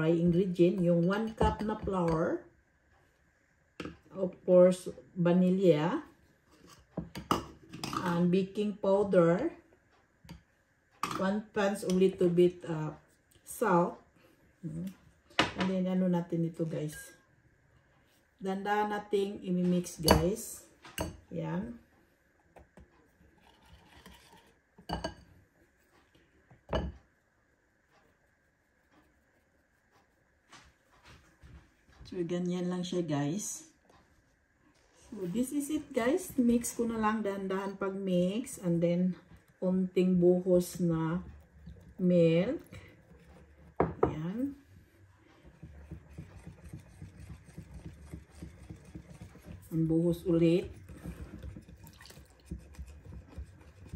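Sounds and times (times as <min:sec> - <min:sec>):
whisk beating batter in bowl: 0:27.8 - 0:31.5, 0:35.6 - 0:53.9.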